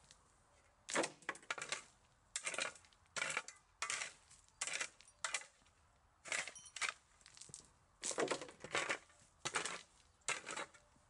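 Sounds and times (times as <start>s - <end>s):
shovel scraping gritty earth: 0.9s - 11.0s.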